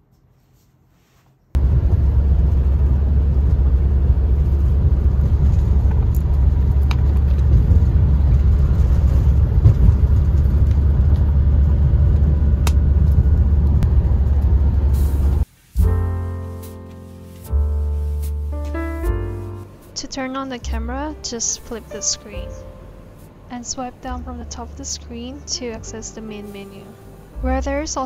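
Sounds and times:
van cabin rumble: 1.6s - 16.5s, 17.4s - 28.0s.

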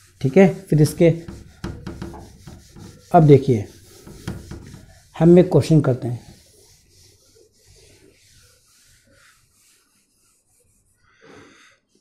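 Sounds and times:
eraser wiping a whiteboard: 0.0s - 12.0s.

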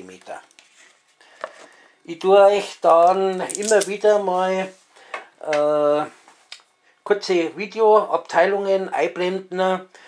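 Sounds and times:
person speaking: 0.0s - 0.5s, 2.0s - 4.8s.

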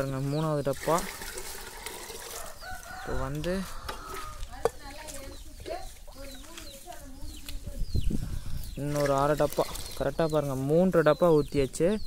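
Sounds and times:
small birds chirping: 0.0s - 12.0s
hens clucking: 0.3s - 7.6s.

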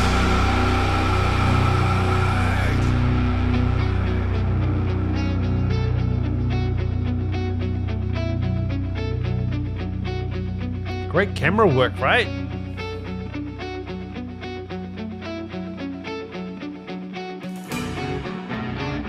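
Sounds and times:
cymbal wash: 0.0s - 6.4s
metal band playing: 0.0s - 7.0s, 11.2s - 12.5s.

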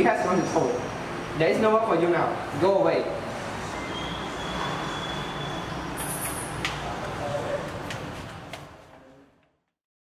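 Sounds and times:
faint high whistle: 3.7s - 6.2s.

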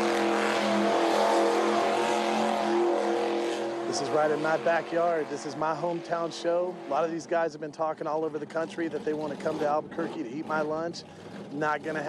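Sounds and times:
monster truck engine running: 7.9s - 12.0s.

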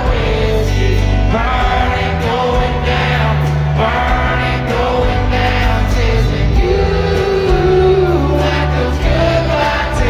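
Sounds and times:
live country band music: 0.0s - 10.0s
man singing long notes: 2.4s - 10.0s.

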